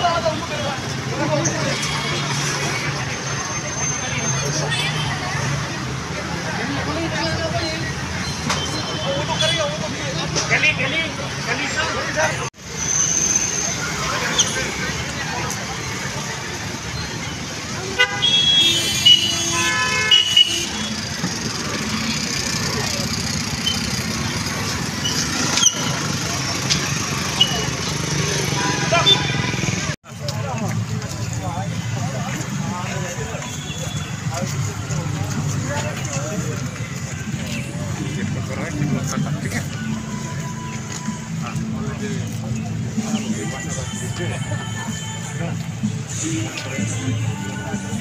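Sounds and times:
people's voices: 0.0 - 19.1, 20.1 - 48.0
street noise: 0.0 - 48.0
vehicle engines humming: 0.0 - 48.0.

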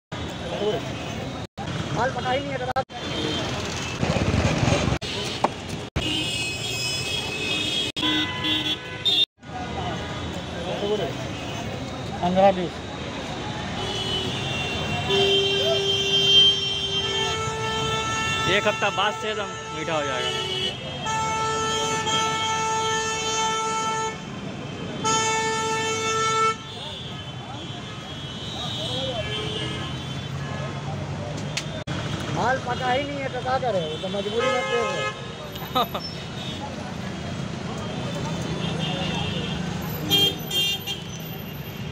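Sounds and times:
street traffic noise: 0.1 - 41.9
vehicle horn tooting: 6.0 - 9.3, 13.8 - 24.2.

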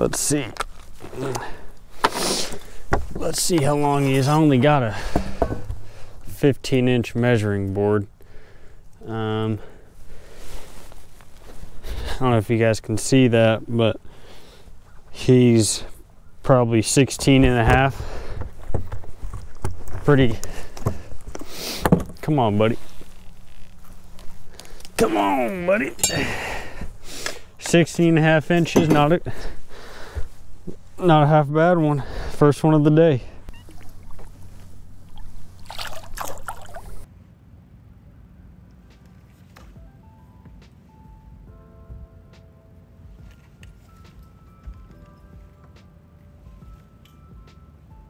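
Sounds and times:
water splashing: 33.5 - 37.1
fish flopping on deck: 33.6 - 37.1
soft background music: 38.1 - 48.0.

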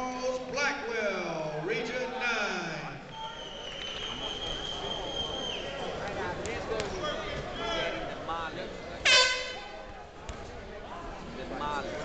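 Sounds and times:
short horn blast: 9.0 - 9.7.

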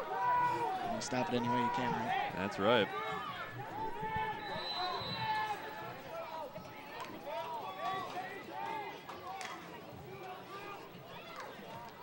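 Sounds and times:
players calling and shouting: 0.0 - 12.0.

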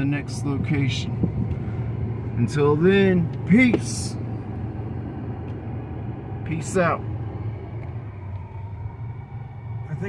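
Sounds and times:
car engine rumble from inside: 0.0 - 10.0.

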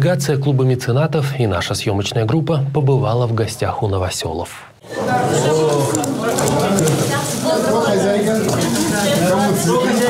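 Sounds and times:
people talking at once: 4.8 - 10.0.

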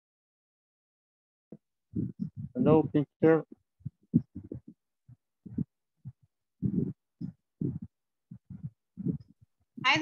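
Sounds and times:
choppy voice on video call: 1.5 - 10.0.

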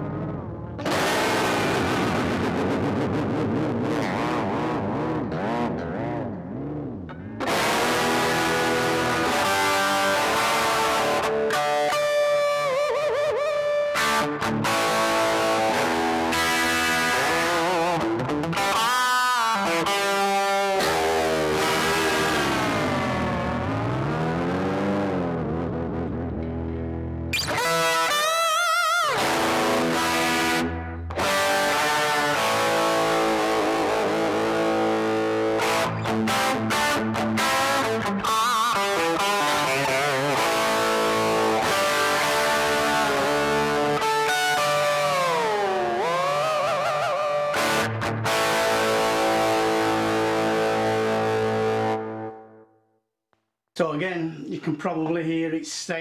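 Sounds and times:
electric guitar tremolo pitch dives: 0.0 - 52.7.

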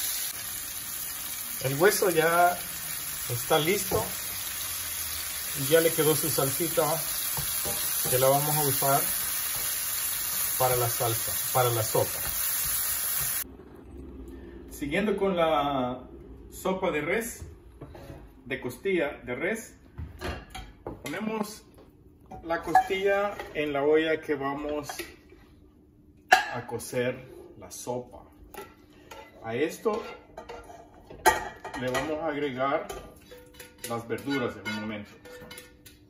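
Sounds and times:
meat sizzling in sauce: 0.0 - 13.4.

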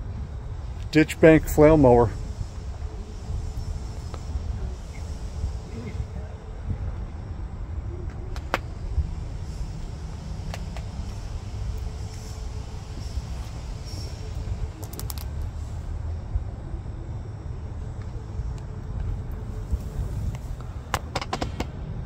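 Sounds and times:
sharp clicks: 14.8 - 15.4.

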